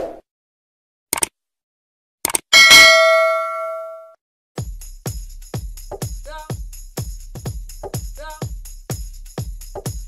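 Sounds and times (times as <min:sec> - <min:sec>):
double mouse click: 0:02.2 - 0:02.4
bell ding: 0:02.6 - 0:04.1.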